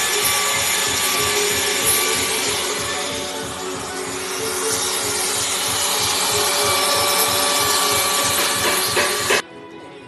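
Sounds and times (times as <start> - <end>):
dust extractor rushing: 0.0 - 9.4
handheld router whining: 0.0 - 9.4.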